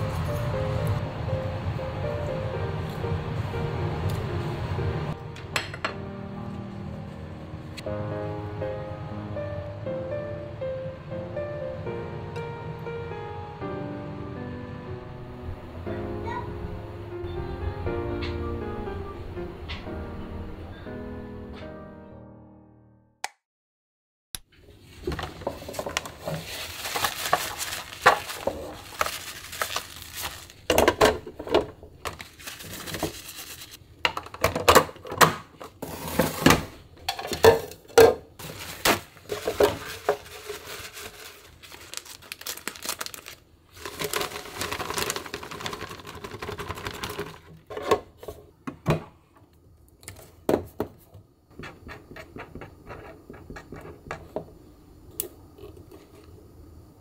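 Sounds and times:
plastic bag rustling: 0:24.8 - 0:33.8, 0:38.4 - 0:47.7
cloth wiping plastic containers: 0:24.9 - 0:30.6
plastic clattering on countertop: 0:25.0 - 0:33.2, 0:34.1 - 0:41.3, 0:43.8 - 0:49.1
breadcrumbs pouring into canister: 0:26.1 - 0:30.7, 0:38.4 - 0:47.5.

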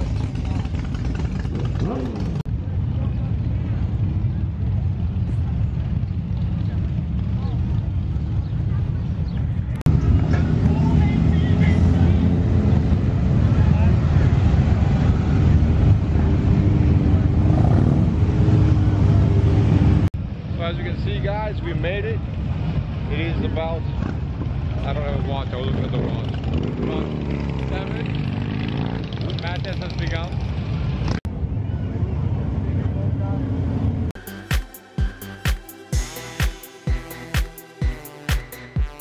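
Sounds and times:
motorcycles riding past: 0:00.0 - 0:20.1, 0:22.2 - 0:34.2
people talking: 0:10.6 - 0:12.5, 0:13.4 - 0:14.9, 0:20.6 - 0:22.2, 0:23.1 - 0:23.9, 0:24.8 - 0:28.2, 0:29.1 - 0:30.4.

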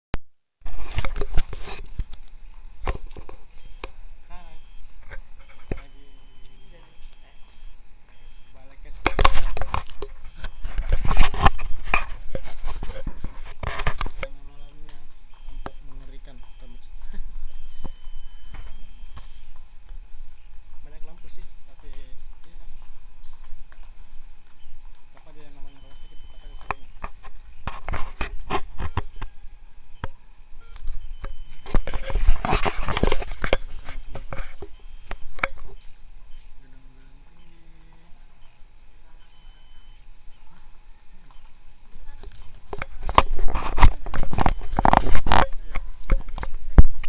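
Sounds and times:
camera handling rustling and knocking: 0:00.7 - 0:04.0, 0:09.0 - 0:14.4, 0:30.8 - 0:35.8.

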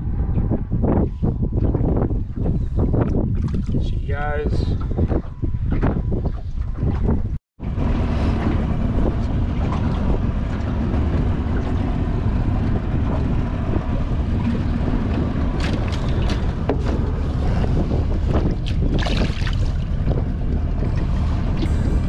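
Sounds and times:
wind buffeting microphone: 0:00.0 - 0:22.0
fish splashing into water: 0:18.6 - 0:19.8.

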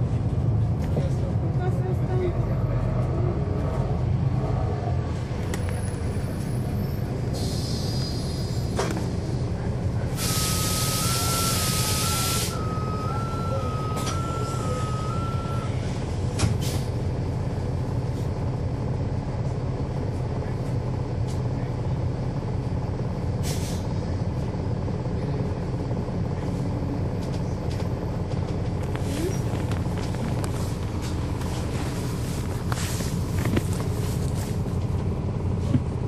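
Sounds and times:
bus engine drone: 0:00.0 - 0:36.0
short air hiss: 0:10.2 - 0:11.0.

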